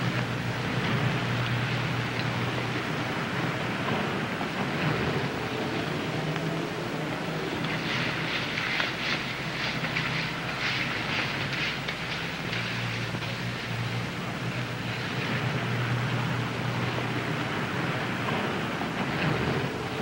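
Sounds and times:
hiss and low hum: 0.0s - 20.0s
soft scratchy sounds: 0.0s - 20.0s.

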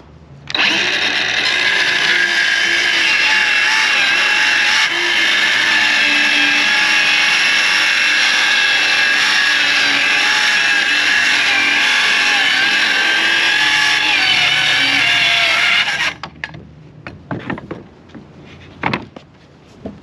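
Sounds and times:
circular saw cutting plywood: 0.5s - 16.2s.

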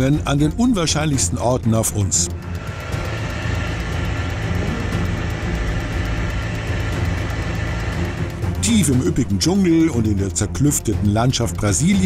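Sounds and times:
outboard motor running: 0.0s - 12.0s.

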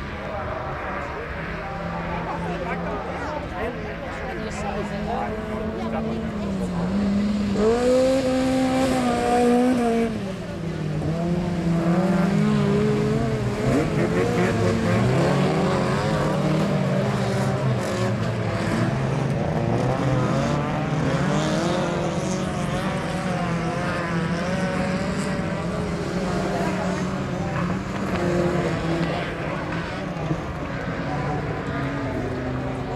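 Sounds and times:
race car engines revving: 0.0s - 32.9s.

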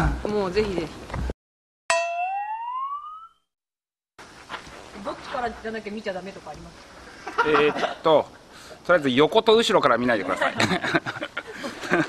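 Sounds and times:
struck tone sliding upward: 2.0s - 3.4s.

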